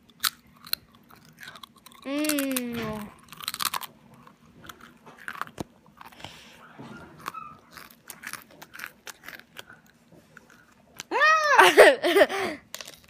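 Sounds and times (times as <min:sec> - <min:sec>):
person chewing crunchy food: 0:00.0 - 0:11.1, 0:12.6 - 0:13.0.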